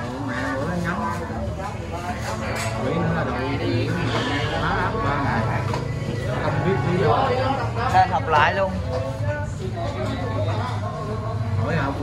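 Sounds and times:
street traffic rumble: 0.0s - 12.0s
men talking: 0.1s - 12.0s.

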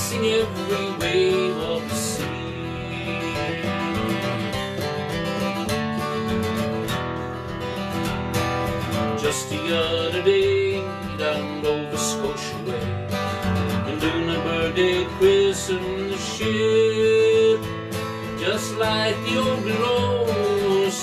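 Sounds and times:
man singing folk song: 0.0s - 21.0s
strummed acoustic guitar: 0.0s - 21.0s.

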